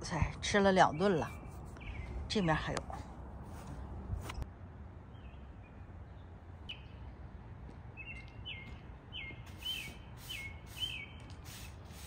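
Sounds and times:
songbird chirping: 0.4 - 2.9, 3.7 - 11.6
stiff broom sweeping paving stones: 9.4 - 12.0.

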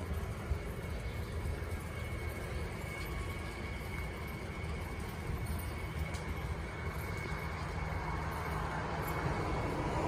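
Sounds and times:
city street ambience: 0.0 - 10.0.

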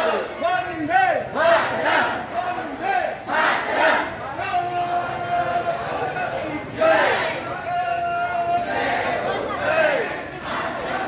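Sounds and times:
crowd chanting in unison: 1.2 - 4.4, 5.0 - 7.6, 8.5 - 11.0.

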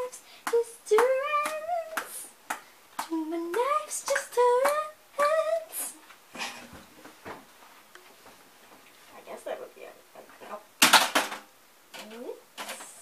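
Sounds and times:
girl singing wordless tune: 0.0 - 6.1.

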